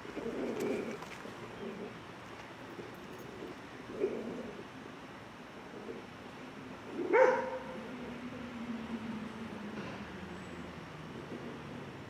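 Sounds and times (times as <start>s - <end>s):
faint street ambience: 0.0s - 12.0s
dog barking: 7.1s - 7.8s.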